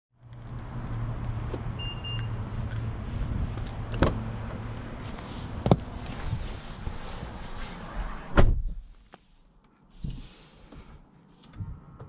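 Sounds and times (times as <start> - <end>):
short electronic beep: 1.8 - 2.3.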